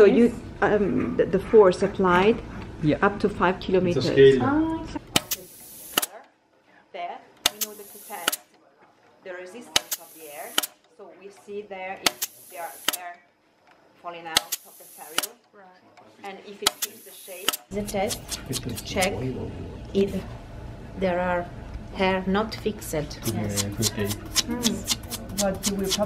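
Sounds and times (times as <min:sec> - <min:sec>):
pneumatic cylinder clicks: 0:05.1 - 0:06.2, 0:07.4 - 0:08.5, 0:09.7 - 0:10.8, 0:12.0 - 0:13.1, 0:14.3 - 0:15.4, 0:16.6 - 0:18.6
air hiss bursts: 0:05.2 - 0:06.1, 0:07.5 - 0:08.4, 0:09.8 - 0:10.8, 0:12.1 - 0:13.0, 0:14.4 - 0:15.3.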